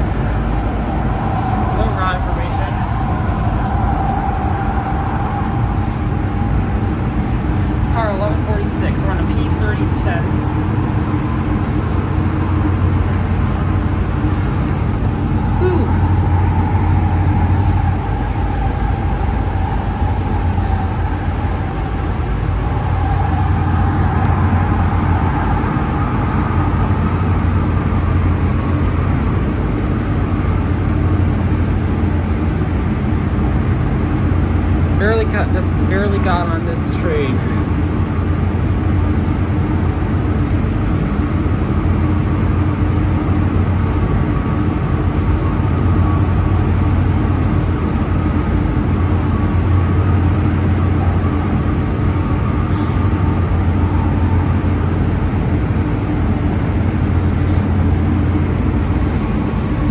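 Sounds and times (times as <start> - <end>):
steady whine: 0.0 - 59.9
wheels rumbling on rail: 0.0 - 59.9.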